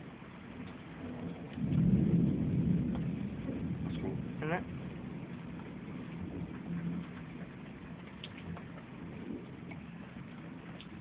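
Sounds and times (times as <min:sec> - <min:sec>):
rolling thunder: 0:00.8 - 0:11.0.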